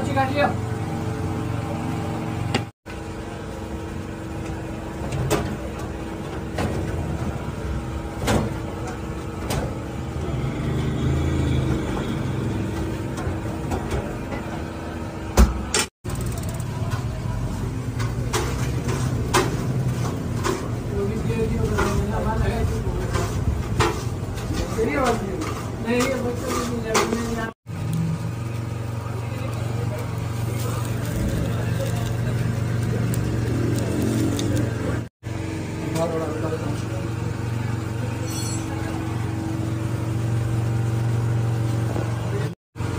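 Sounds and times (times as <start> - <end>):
low mechanical hum: 0.0 - 42.9.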